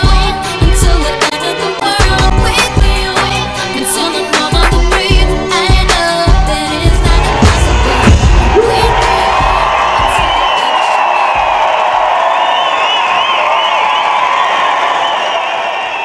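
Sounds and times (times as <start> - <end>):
live pop song: 0.0 - 11.6
concert crowd cheering and whistling: 7.0 - 16.0.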